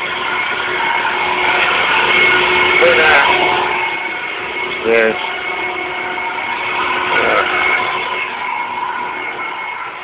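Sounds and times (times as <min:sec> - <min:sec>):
floor cleaning machine motor whining: 0:00.0 - 0:10.0.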